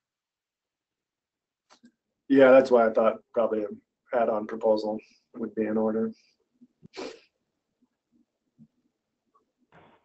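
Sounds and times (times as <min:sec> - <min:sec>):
breath burst into microphone: 0:06.8 - 0:07.3.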